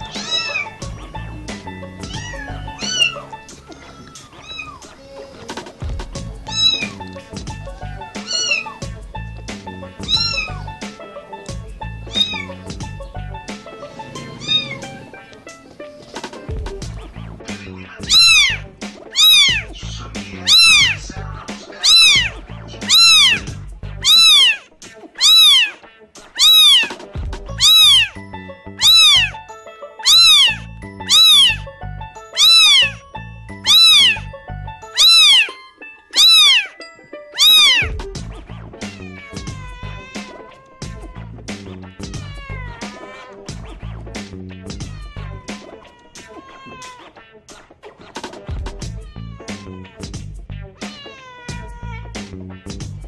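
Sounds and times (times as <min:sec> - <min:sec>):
kitten meowing: 0:00.0 - 0:05.0, 0:06.4 - 0:08.9, 0:09.9 - 0:10.8, 0:12.0 - 0:13.0, 0:14.0 - 0:15.4, 0:18.0 - 0:21.0, 0:21.8 - 0:25.8, 0:26.4 - 0:27.0, 0:27.6 - 0:28.2, 0:28.8 - 0:29.4, 0:30.0 - 0:31.7, 0:32.4 - 0:36.8, 0:37.4 - 0:38.0, 0:38.8 - 0:43.6, 0:44.7 - 0:47.2, 0:48.8 - 0:50.2, 0:50.8 - 0:52.3
background music with beat: 0:00.0 - 0:25.2, 0:25.8 - 0:28.2, 0:37.4 - 0:53.0.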